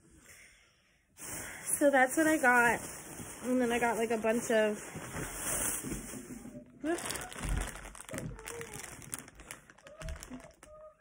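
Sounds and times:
plastic bag rustling: 0:01.2 - 0:11.0.

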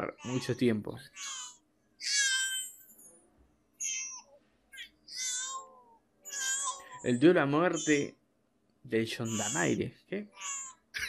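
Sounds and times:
newborn baby crying: 0:00.0 - 0:02.8, 0:03.8 - 0:08.1, 0:09.2 - 0:11.0.

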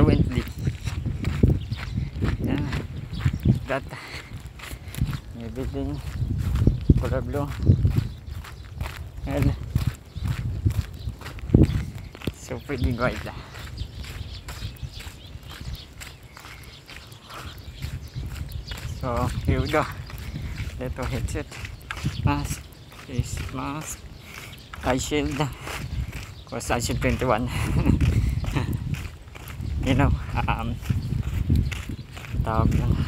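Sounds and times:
person speaking: 0:00.0 - 0:01.0, 0:03.6 - 0:04.3, 0:05.2 - 0:06.1, 0:12.3 - 0:13.6, 0:18.8 - 0:24.0, 0:24.8 - 0:25.9, 0:26.5 - 0:28.8, 0:29.8 - 0:30.8
wind rumbling on microphone: 0:00.0 - 0:33.0
footsteps walking: 0:00.1 - 0:33.0.

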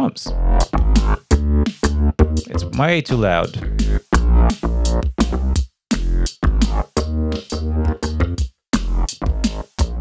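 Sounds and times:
drum machine beat: 0:00.3 - 0:10.0
synthesized bassline: 0:00.3 - 0:10.0.

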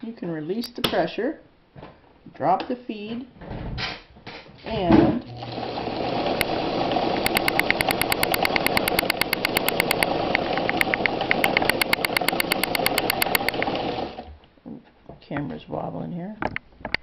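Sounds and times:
sewing machine running: 0:05.4 - 0:14.3
needle clicking rapidly: 0:07.2 - 0:13.8.

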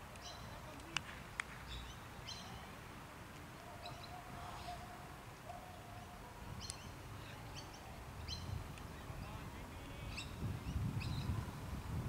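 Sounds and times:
small birds chirping: 0:00.1 - 0:02.8, 0:03.5 - 0:11.5.

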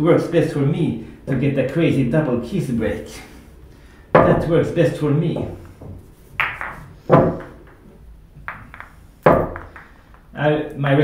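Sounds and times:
pool balls clacking: 0:04.1 - 0:11.0.

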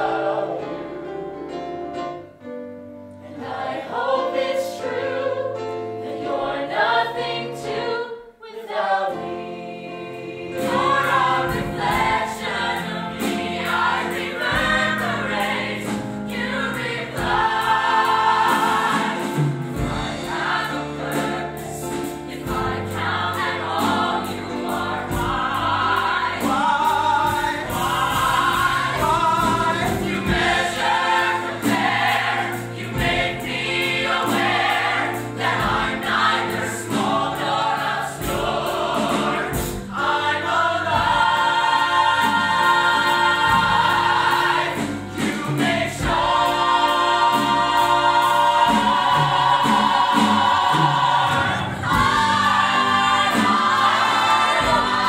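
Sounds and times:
cast singing in chorus: 0:24.9 - 0:55.0.

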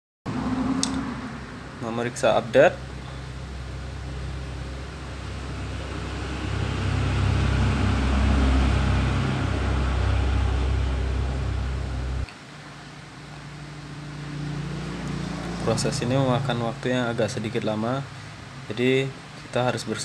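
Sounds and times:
low motor hum: 0:00.3 - 0:12.3.

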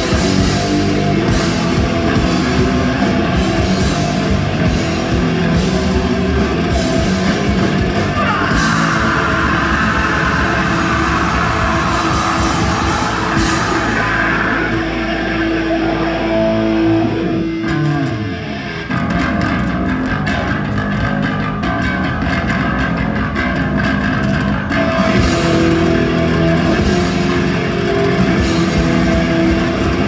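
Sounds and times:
punk band playing live: 0:00.0 - 0:30.0.

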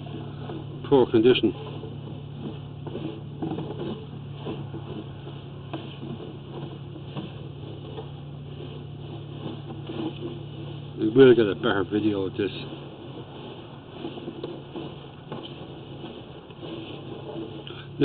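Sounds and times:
low mechanical hum: 0:00.0 - 0:18.0.

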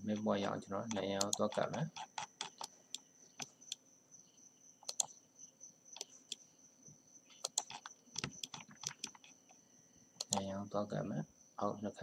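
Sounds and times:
keyboard and mouse clicks: 0:00.0 - 0:03.8, 0:04.8 - 0:05.2, 0:06.0 - 0:06.4, 0:07.3 - 0:09.5, 0:10.2 - 0:10.6
faint high-pitched electronic whine: 0:00.0 - 0:12.0.

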